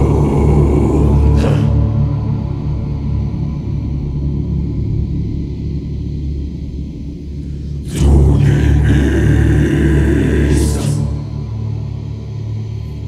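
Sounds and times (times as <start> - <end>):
choir of growled voices: 0.0 - 3.2, 7.8 - 13.0.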